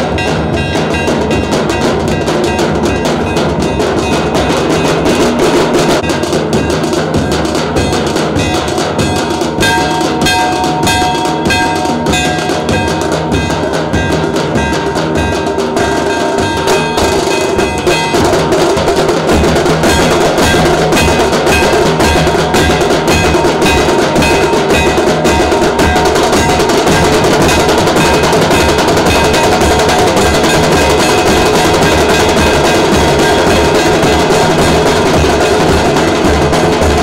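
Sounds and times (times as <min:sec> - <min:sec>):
drums beaten in fast rhythm: 0:00.0 - 0:37.0
held instrument tones: 0:00.0 - 0:37.0.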